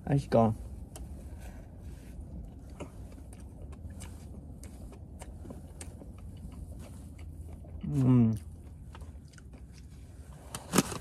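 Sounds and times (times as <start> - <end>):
low steady hum: 0.0 - 11.0
person chewing: 0.8 - 10.9.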